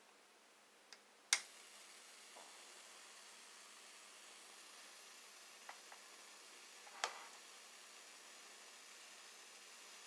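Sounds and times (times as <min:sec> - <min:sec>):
faint hiss of corona discharge: 0:01.3 - 0:10.0.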